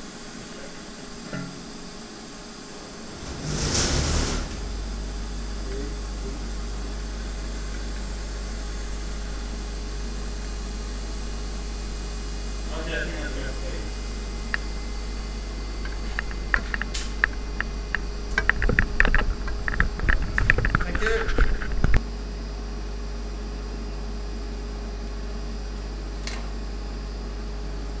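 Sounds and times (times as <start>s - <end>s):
steady low hum: 0.0s - 28.0s
sharp clicks and knocks: 15.8s - 22.0s.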